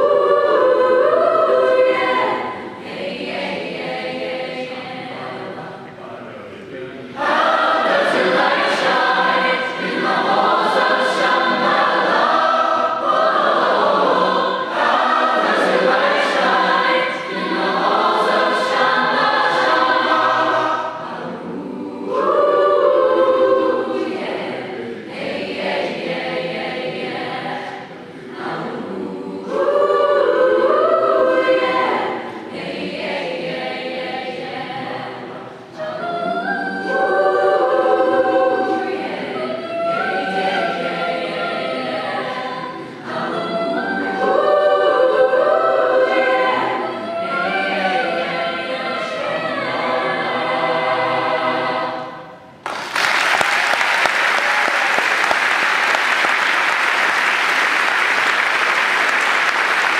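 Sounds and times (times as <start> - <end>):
mixed choir singing: 0.0 - 59.9
audience applause: 52.6 - 59.9.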